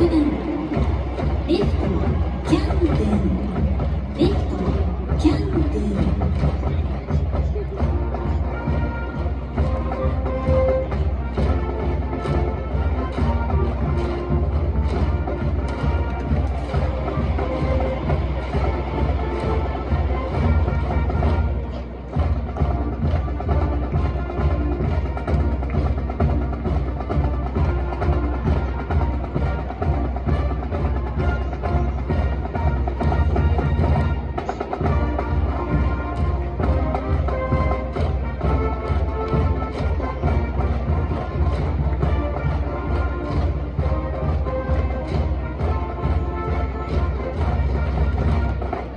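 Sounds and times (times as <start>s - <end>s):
band playing cheer song: 0.0s - 48.9s
steady drumbeat: 0.0s - 48.9s.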